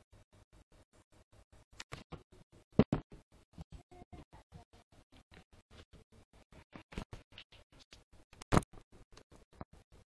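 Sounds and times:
pulsing faint buzz: 0.0 - 6.8.

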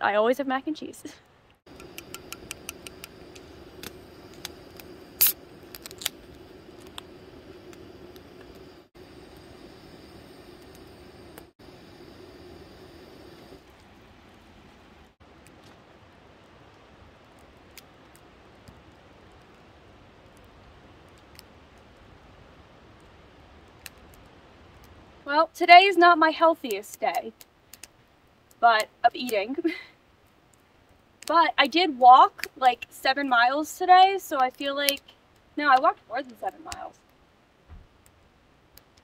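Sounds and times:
steady low hum: 1.2 - 17.2
campfire crackling: 1.2 - 39.0
fire popping: 1.5 - 25.4, 26.2 - 39.0.

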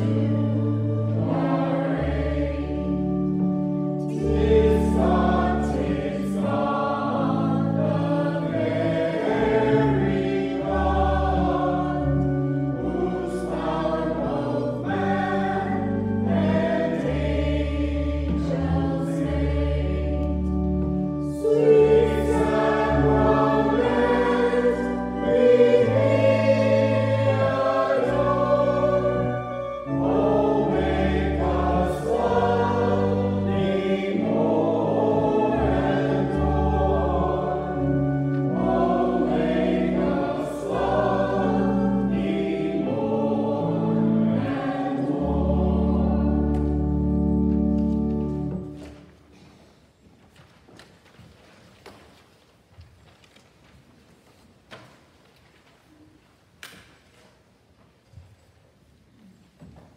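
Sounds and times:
voices singing a slow hymn: 0.0 - 49.5.

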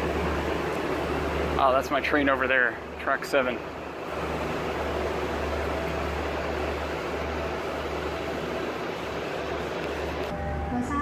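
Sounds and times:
station platform noise: 0.0 - 11.0.

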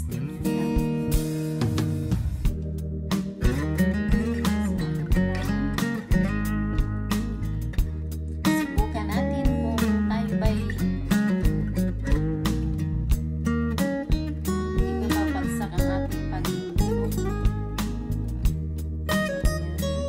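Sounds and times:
steady beat: 0.0 - 20.0
strummed acoustic guitar: 0.0 - 20.0.

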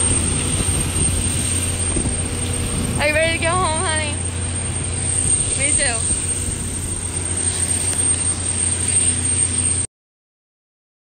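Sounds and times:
aircraft engine noise: 0.0 - 9.9
high engine whine: 0.0 - 9.9.

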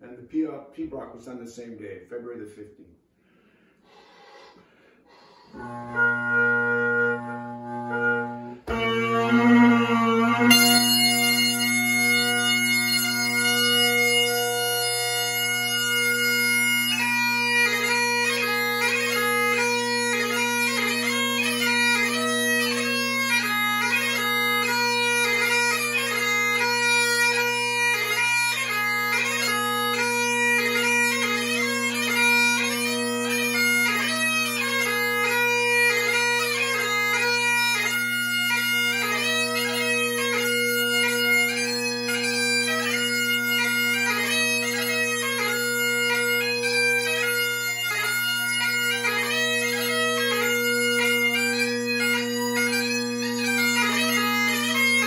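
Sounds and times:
bagpipe chanter melody: 5.1 - 55.0
bagpipe drones humming: 5.1 - 55.0.

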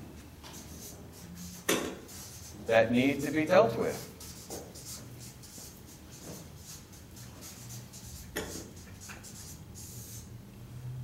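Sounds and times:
marker scratching on paper: 0.4 - 10.3.

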